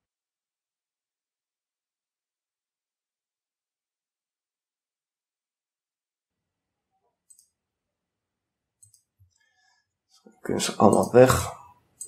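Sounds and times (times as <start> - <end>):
computer mouse clicks: 7.2 - 7.6, 8.8 - 9.4.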